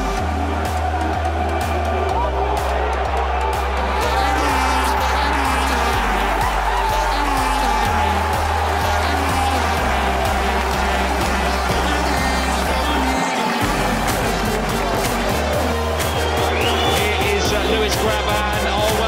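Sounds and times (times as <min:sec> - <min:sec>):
background music with steady beat: 0:00.0 - 0:19.0
deep bass line: 0:00.0 - 0:19.0.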